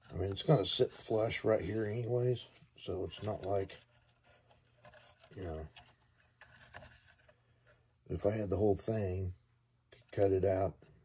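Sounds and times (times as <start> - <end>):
faint clicks and rubs of plywood: 2.4 - 7.9.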